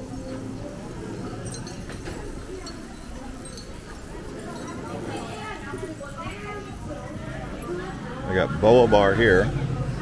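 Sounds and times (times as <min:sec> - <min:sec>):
street background: 0:00.0 - 0:10.0
voices: 0:00.0 - 0:10.0.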